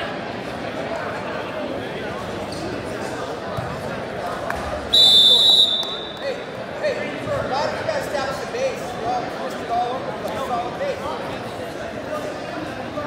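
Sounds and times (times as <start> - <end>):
crowd chatter: 0.0 - 13.0
referee's whistle blast: 4.9 - 6.2.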